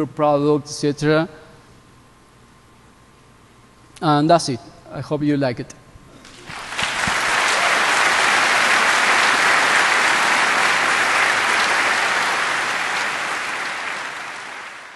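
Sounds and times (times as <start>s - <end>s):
audience applauding: 6.2s - 14.9s.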